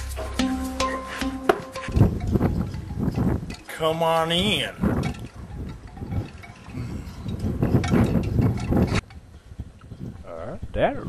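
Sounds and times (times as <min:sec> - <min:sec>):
background music with held low notes: 0:00.0 - 0:04.8.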